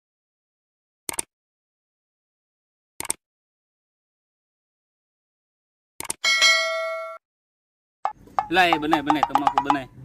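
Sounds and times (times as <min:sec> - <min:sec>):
notification bell ding: 0:06.2 - 0:07.2, 0:08.4 - 0:09.9.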